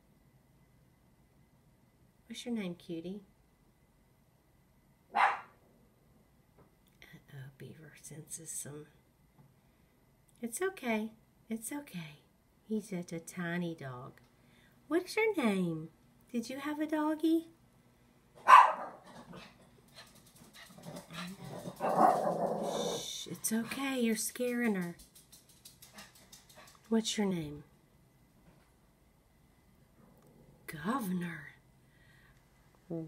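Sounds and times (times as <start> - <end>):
small dog barking: 5.1 - 5.6, 18.4 - 19.6, 20.8 - 23.0
low dog noises: 18.4 - 23.8.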